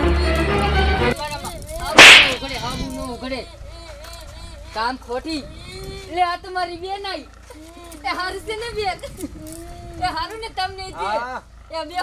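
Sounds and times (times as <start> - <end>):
whip-crack swish: 1.9 - 2.6.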